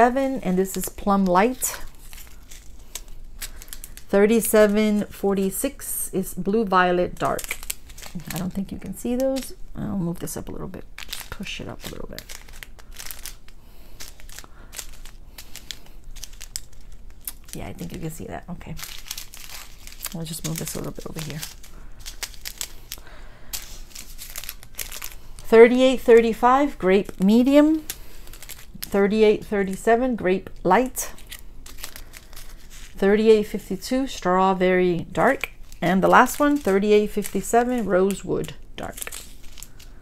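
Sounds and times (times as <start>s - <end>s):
plastic bags crinkling: 0.0s - 40.0s.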